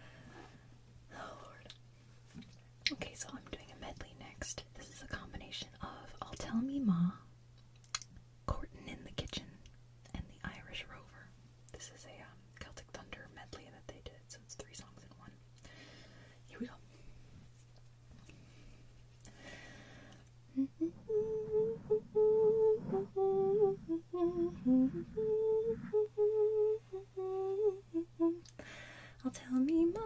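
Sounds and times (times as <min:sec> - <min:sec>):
woman whispering: 0:01.1 - 0:01.7, 0:02.9 - 0:07.3, 0:08.5 - 0:15.4, 0:16.4 - 0:16.8.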